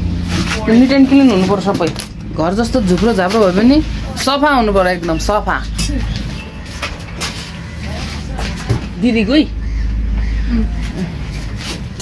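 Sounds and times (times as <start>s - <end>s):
low mechanical hum: 0.0s - 12.0s
faint background voices: 5.1s - 12.0s.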